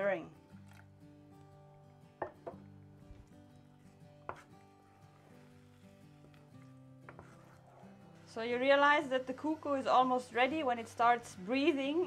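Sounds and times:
faint background music: 0:00.0 - 0:12.0
wooden stick stirring thick cornmeal: 0:03.1 - 0:12.0.

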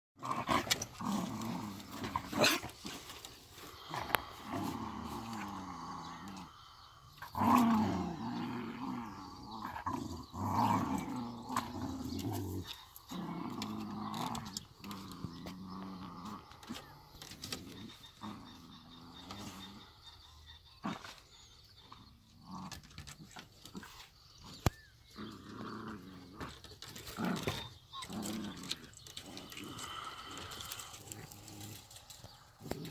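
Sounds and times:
small dogs growling: 0:00.2 - 0:32.9.

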